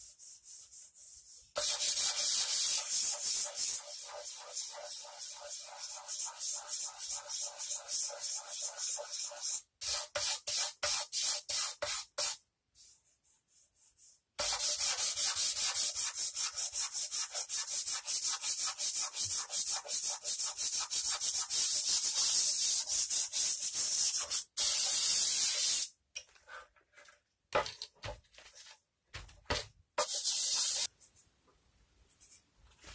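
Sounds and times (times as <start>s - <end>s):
sandpaper rasping on wood: 0.0s - 12.4s, 14.4s - 25.8s, 30.0s - 30.9s.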